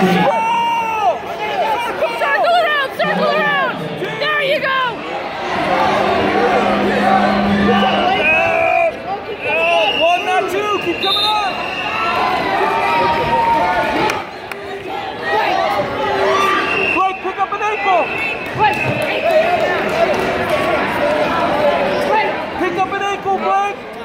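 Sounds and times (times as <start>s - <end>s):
crowd shouting: 0.0s - 23.8s.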